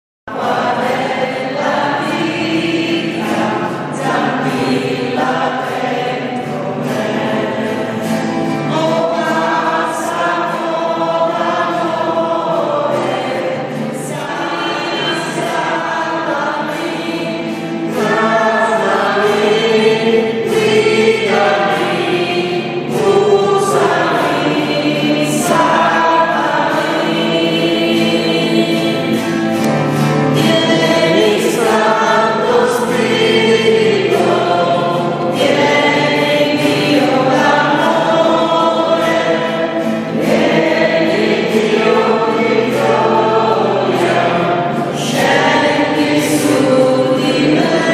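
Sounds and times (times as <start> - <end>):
choir singing: 0.3 - 47.9.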